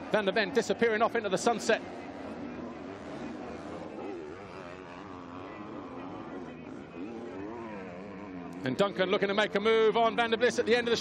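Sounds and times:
motocross bike engines revving: 0.0 - 11.0.

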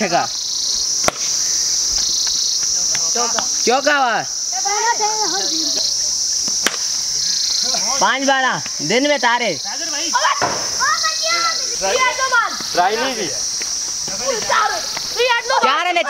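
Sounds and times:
insects chorus droning: 0.0 - 16.0
cricket bat hitting ball: 1.0 - 1.3, 6.6 - 6.9, 10.4 - 10.8
players shouting: 9.8 - 13.4, 14.0 - 16.0.

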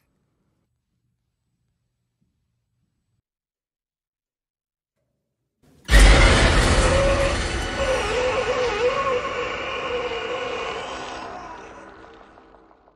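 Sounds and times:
low rumble: 5.9 - 12.9
sudden loud hit: 5.9 - 12.9.

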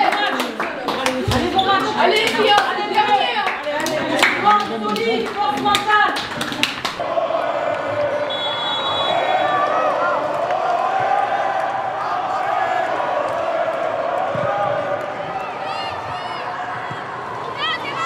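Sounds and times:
stadium crowd hum: 0.0 - 18.0
excited shouting voices: 1.4 - 6.2
hand claps and high-fives: 3.4 - 7.0.

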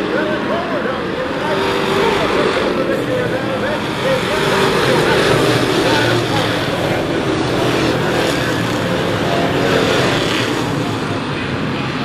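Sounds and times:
stock car engines racing: 0.0 - 12.0.

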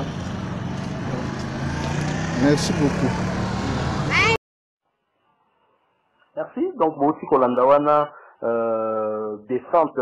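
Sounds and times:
engine humming: 0.0 - 4.4.

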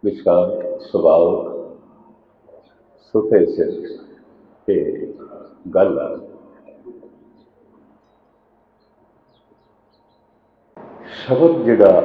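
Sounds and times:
man's voice: 0.0 - 1.6, 3.1 - 4.0, 4.7 - 6.3, 11.0 - 12.0.

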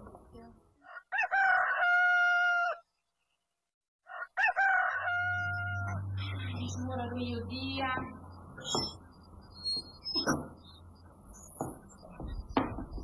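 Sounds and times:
rooster crowing: 0.8 - 2.9, 4.0 - 6.0.

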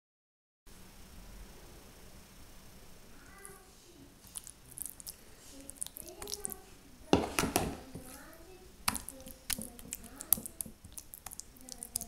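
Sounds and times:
spoon knocking on glass dish: 7.2 - 8.2.

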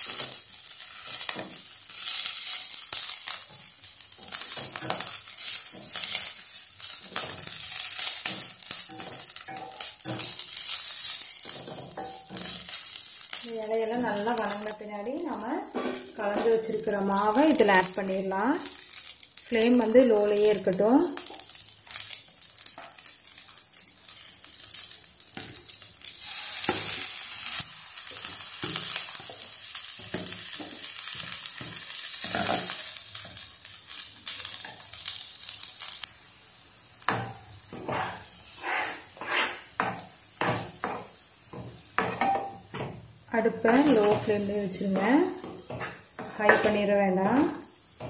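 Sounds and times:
leaves sizzling in a pan: 0.0 - 48.0
spatula stirring in a pan: 0.0 - 48.0.

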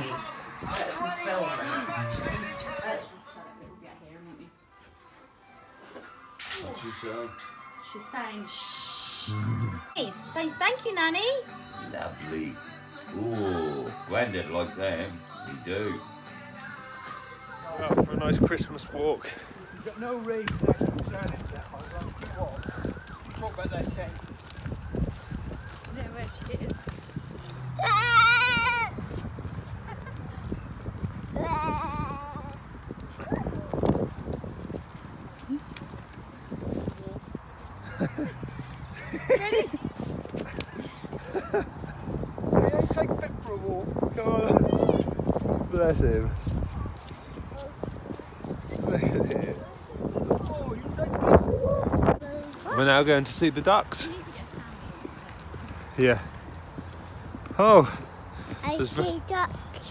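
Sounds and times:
faint background music: 0.0 - 22.6.

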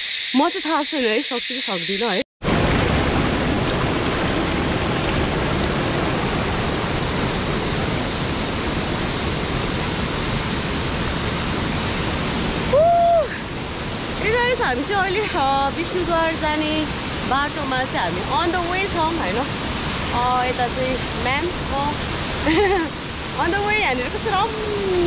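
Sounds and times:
stream rushing over rock: 2.4 - 25.0.

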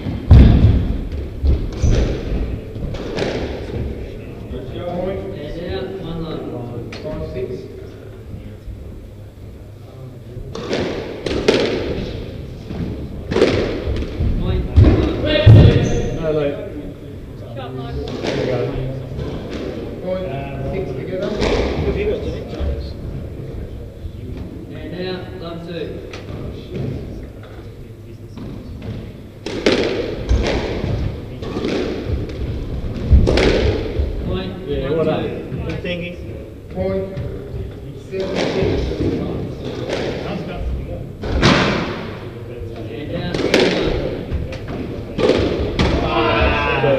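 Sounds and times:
squash ball hit by racquets: 0.0 - 4.1, 10.5 - 16.2, 18.0 - 20.0, 21.2 - 22.2, 28.4 - 34.3, 38.2 - 40.5, 41.2 - 42.4, 43.2 - 46.3.

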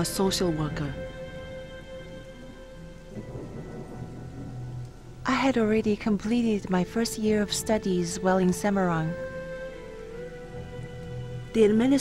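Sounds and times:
low rumble: 0.0 - 9.2
rain-like hiss: 0.0 - 12.0
soft sustained chords: 0.0 - 12.0.

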